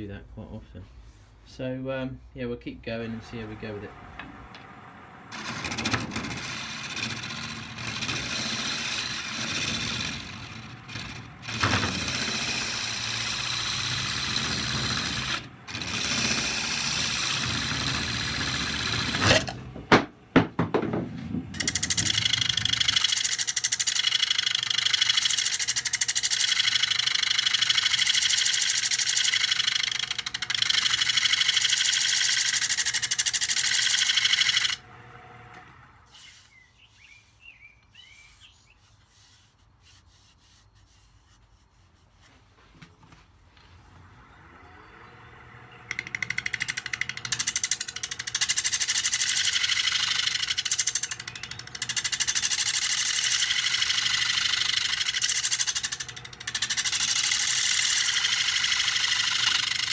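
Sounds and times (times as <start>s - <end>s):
lathe gouge scraping wood: 5.3s - 19.6s, 21.6s - 35.4s, 44.8s - 59.9s.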